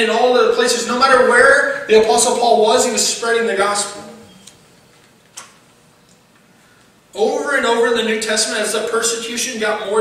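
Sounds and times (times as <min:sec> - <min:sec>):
man's voice: 0:00.0 - 0:04.3, 0:07.2 - 0:10.0.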